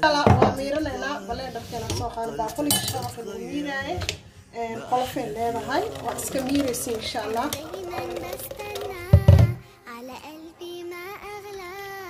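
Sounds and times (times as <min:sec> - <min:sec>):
child singing wordless tune: 0:07.4 - 0:12.0.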